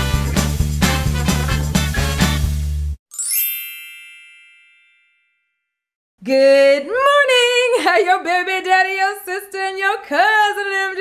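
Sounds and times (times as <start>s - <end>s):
upbeat intro music: 0.0s - 4.2s
bright chime ringing: 3.1s - 5.8s.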